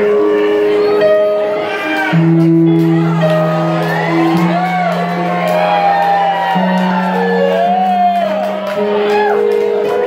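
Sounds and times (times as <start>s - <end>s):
keyboard playing slow chords: 0.0s - 10.0s
audience whooping and shouting: 1.6s - 10.0s.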